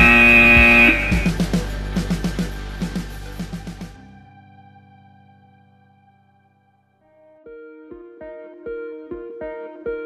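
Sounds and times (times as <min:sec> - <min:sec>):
electronic buzzer tone: 0:00.0 - 0:01.4
background music with a beat: 0:00.0 - 0:04.2.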